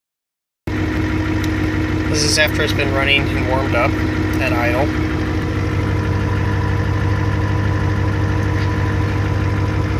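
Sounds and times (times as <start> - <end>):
diesel engine idling: 0.7 - 9.9.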